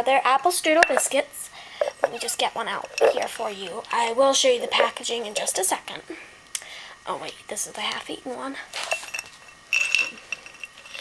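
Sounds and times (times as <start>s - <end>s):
glass jar clinking: 0.8s - 1.2s, 1.8s - 3.8s, 8.8s - 11.0s.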